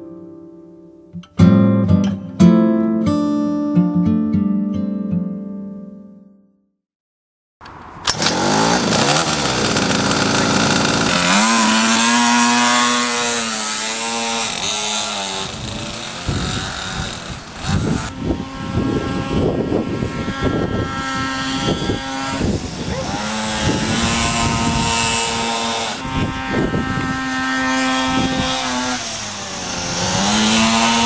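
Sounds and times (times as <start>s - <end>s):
mini motorbike engine revving: 8.0s - 31.0s.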